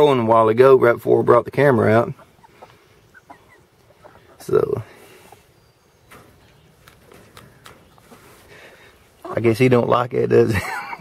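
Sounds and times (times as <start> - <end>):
faint rustling: 1.9 - 9.8.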